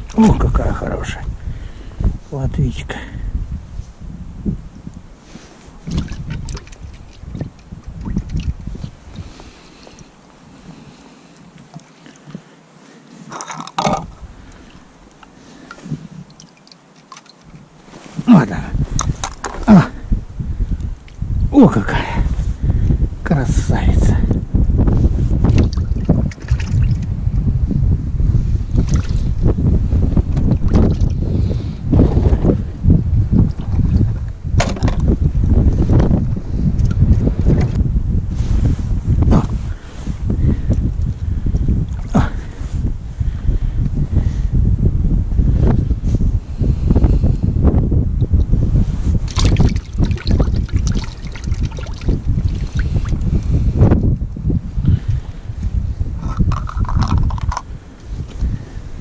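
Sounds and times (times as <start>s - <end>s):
wind buffeting microphone: 0.0s - 16.5s, 17.4s - 59.0s
rustles and clicks of handling tackle: 13.2s - 18.3s, 18.9s - 19.7s, 56.2s - 58.5s.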